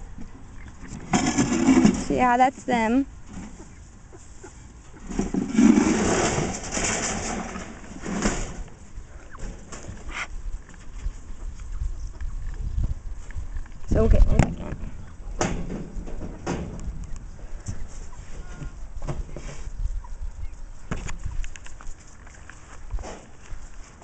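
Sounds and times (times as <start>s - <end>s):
rustling and handling noise: 20.9s - 24.0s.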